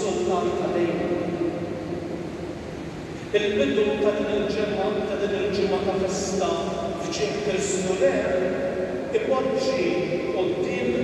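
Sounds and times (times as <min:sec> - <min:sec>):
room noise hum: 0:00.0 - 0:11.0.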